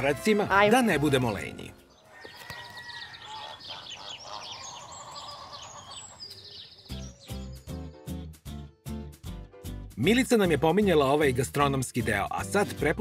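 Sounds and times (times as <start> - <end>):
small birds chirping: 1.2 - 8.3.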